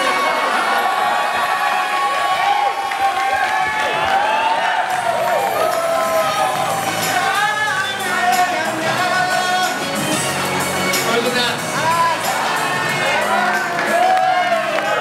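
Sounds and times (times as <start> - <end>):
crowd cheering and whooping: 0.0 - 9.4, 11.8 - 15.0
pop music playing: 4.1 - 15.0.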